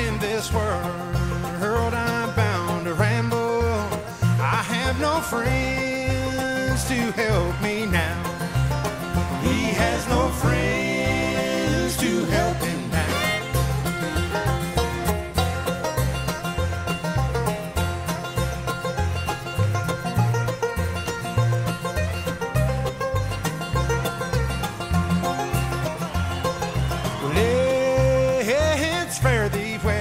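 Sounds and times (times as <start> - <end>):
fast banjo picking: 0.0 - 30.0
strummed acoustic guitar: 0.0 - 30.0
upright bass thumping: 0.0 - 30.0.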